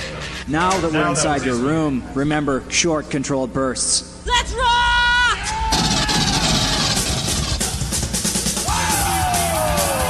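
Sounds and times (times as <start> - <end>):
heavy rock music: 5.8 - 10.0.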